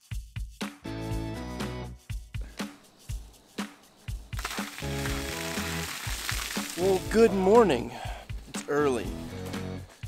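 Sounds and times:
music with drum beat and bass: 0:00.0 - 0:10.0
rainwater pouring and splashing: 0:02.8 - 0:08.5.

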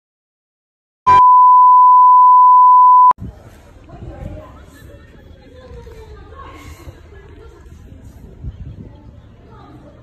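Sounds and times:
high-pitched beep tone: 0:01.1 - 0:03.2.

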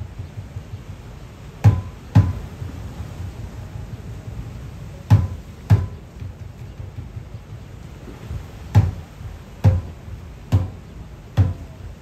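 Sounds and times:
deep gourd drum strikes: 0:01.6 - 0:02.5, 0:05.1 - 0:12.0.

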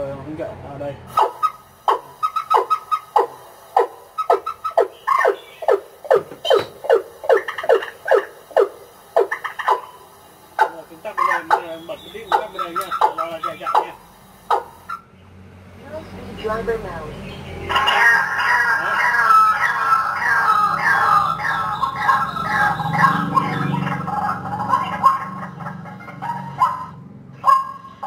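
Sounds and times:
bird calls through loudspeakers: 0:01.1 - 0:10.0, 0:10.6 - 0:15.1, 0:16.0 - 0:28.0.

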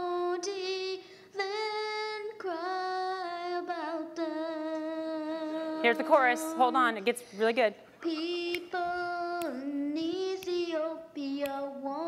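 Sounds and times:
girl singing unaccompanied: 0:00.0 - 0:07.4, 0:08.0 - 0:12.0.

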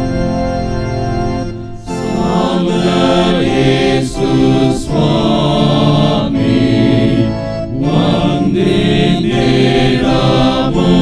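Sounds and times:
electronic keyboard: 0:00.0 - 0:11.0
men singing a hymn in unison: 0:01.9 - 0:11.0.

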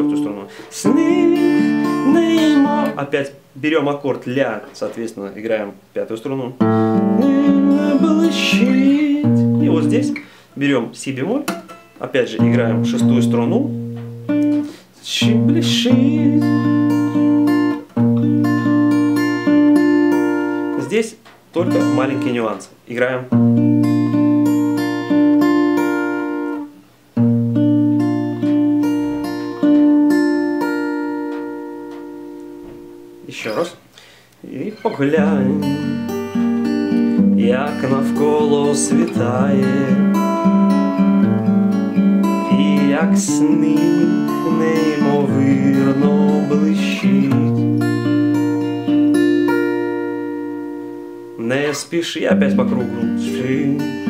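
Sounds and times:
fingerpicked acoustic guitar: 0:00.0 - 0:03.4, 0:06.4 - 0:22.7, 0:23.3 - 0:54.0.

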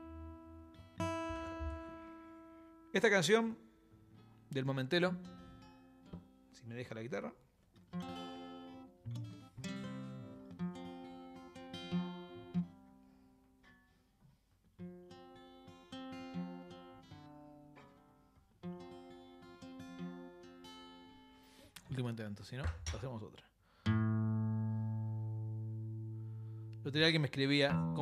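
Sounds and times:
acoustic guitar strumming chords: 0:00.0 - 0:03.0, 0:07.9 - 0:13.0, 0:14.8 - 0:21.6, 0:23.9 - 0:26.8.

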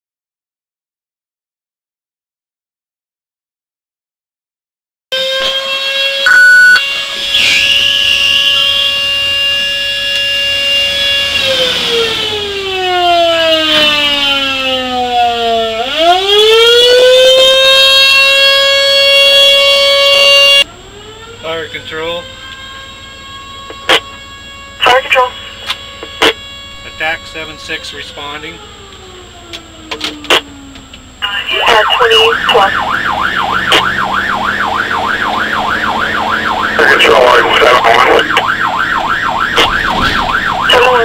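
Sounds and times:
emergency siren wailing: 0:05.1 - 0:41.0
short loud tone: 0:06.3 - 0:09.1.

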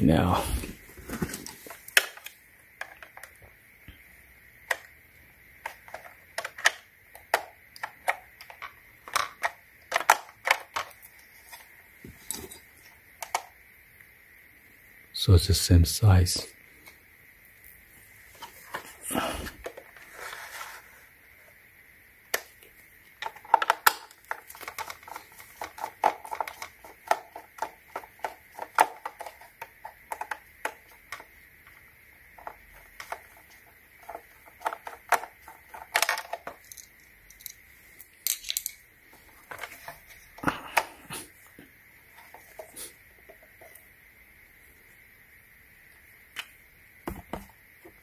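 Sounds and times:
plastic parts clicking and knocking: 0:01.1 - 0:03.6, 0:04.6 - 0:05.0, 0:05.6 - 0:13.6, 0:22.3 - 0:41.0, 0:46.4 - 0:48.0.

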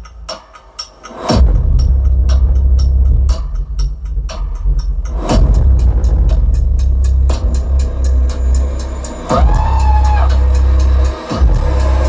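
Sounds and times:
trailer-style music with sub-bass: 0:00.0 - 0:12.0
percussive hits: 0:01.1 - 0:08.4
deep downward-sweeping boom: 0:05.1 - 0:10.8.

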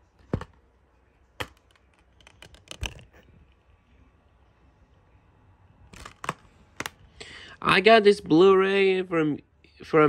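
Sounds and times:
plastic case clicks: 0:00.2 - 0:00.6, 0:01.4 - 0:03.1, 0:05.9 - 0:07.0.

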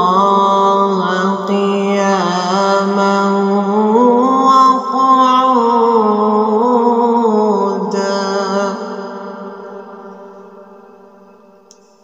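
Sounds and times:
man reciting melodically: 0:00.0 - 0:10.4.

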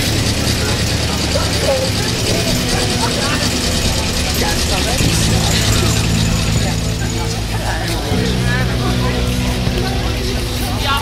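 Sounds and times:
loud low drone: 0:00.0 - 0:11.0
people talking while walking: 0:00.0 - 0:11.0.

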